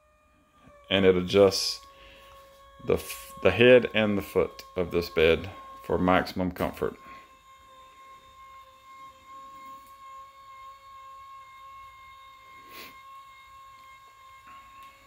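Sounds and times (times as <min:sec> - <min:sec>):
electric motors humming: 0:00.0 - 0:15.0.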